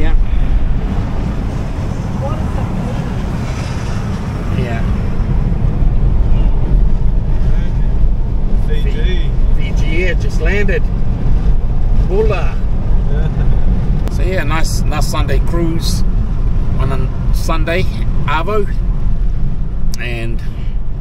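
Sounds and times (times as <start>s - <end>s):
road rumble: 0.0s - 21.0s
wind through open car window: 0.0s - 21.0s.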